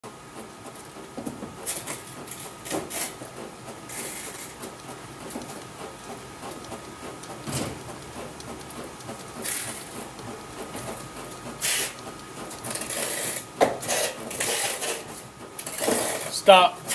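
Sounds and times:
bat rubbing and rasping in rollers: 10.7s - 16.9s.

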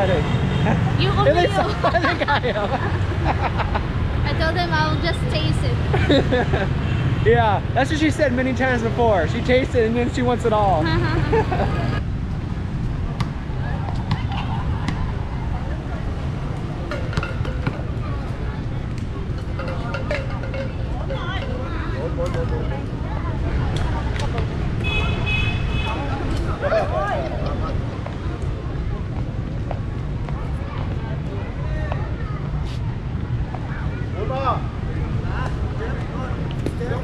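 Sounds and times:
traffic: 0.0s - 37.0s.

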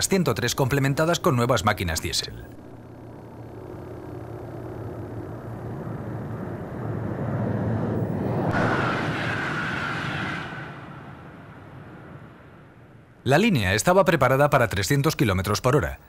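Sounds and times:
thin high whine: 0.0s - 13.6s
train passing at speed: 3.5s - 13.0s.

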